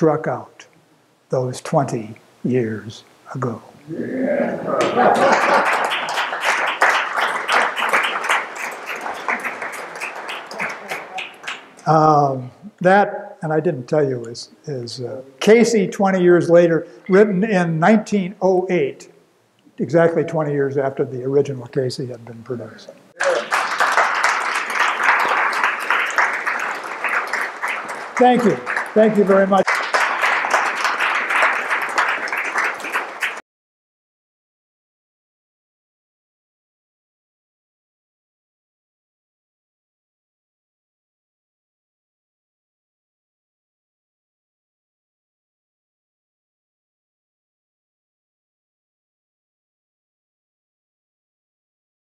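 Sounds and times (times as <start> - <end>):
audience applauding: 4.8 - 11.8, 23.2 - 33.4.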